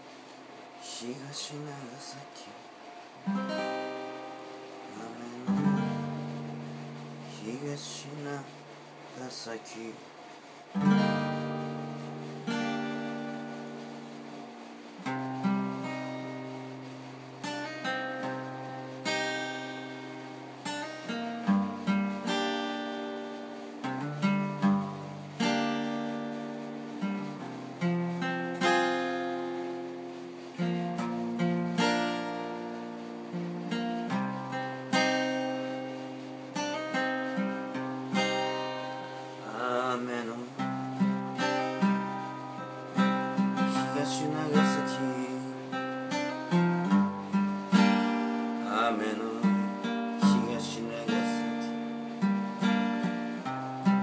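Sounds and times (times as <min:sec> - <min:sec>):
acoustic guitar playing chords: 0:00.0 - 0:54.0.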